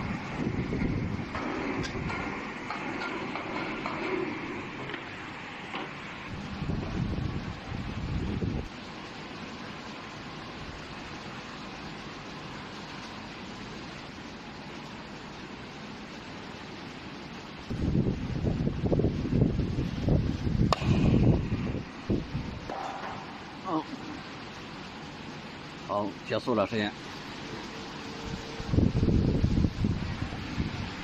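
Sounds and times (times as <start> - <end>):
low rumbling: 17.7 - 24.4.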